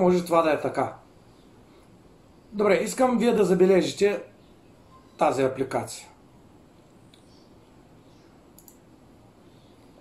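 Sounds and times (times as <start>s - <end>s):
low room hiss: 0.0s - 10.0s
computer mouse clicks: 8.5s - 8.9s.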